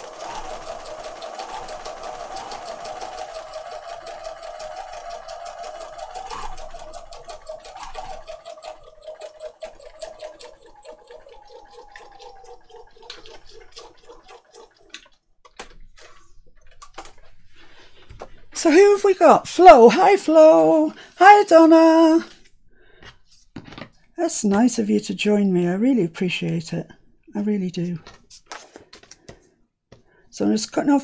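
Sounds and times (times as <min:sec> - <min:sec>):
sewing machine stitching: 0:00.0 - 0:16.2.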